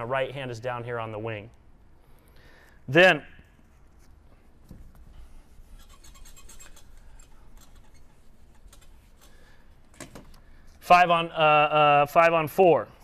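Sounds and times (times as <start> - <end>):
eraser rubbing on whiteboard: 5.3 - 9.4
small ticks: 5.8 - 9.4.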